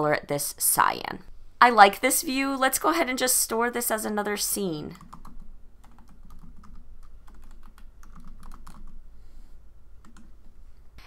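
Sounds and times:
typing on computer keyboard: 5.0s - 9.0s, 10.0s - 10.3s.

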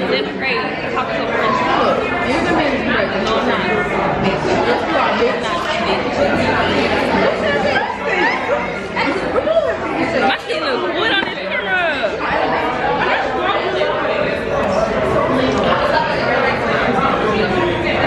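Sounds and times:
many people talking: 0.0s - 18.0s.

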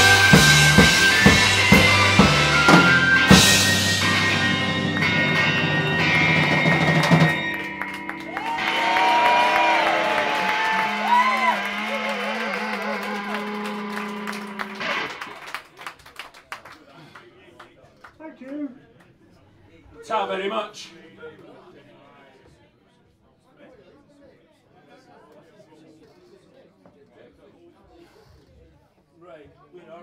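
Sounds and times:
ringing guitar and bass notes: 0.0s - 15.4s
rock band playing: 0.0s - 15.5s.

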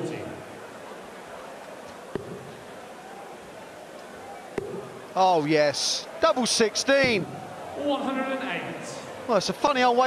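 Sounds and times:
crowd murmur: 0.0s - 9.6s.

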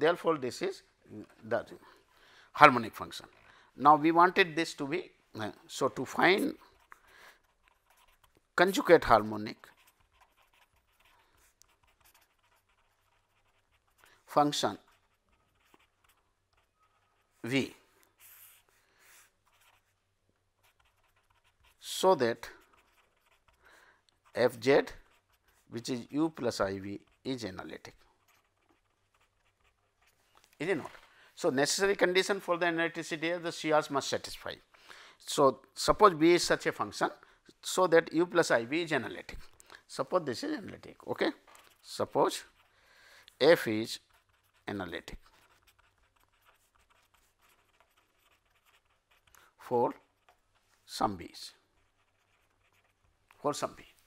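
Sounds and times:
pen scratching on paper: 5.9s - 30.3s, 41.4s - 42.8s, 43.4s - 54.0s.

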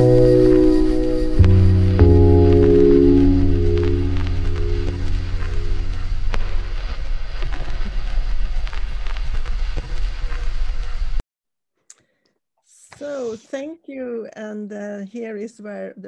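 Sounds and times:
background music of held chords: 0.0s - 6.5s
hissing crackling texture: 0.0s - 11.2s.

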